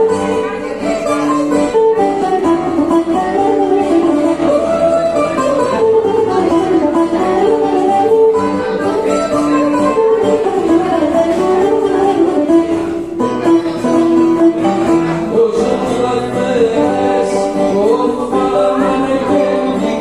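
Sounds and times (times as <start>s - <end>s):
bouzouki melody: 0.0s - 20.0s
strummed acoustic guitar: 0.0s - 20.0s.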